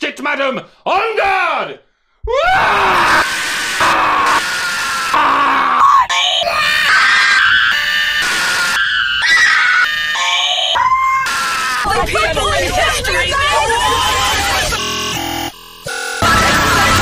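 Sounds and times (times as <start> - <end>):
man screaming glitched: 2.3 - 12.1, 13.3 - 14.9.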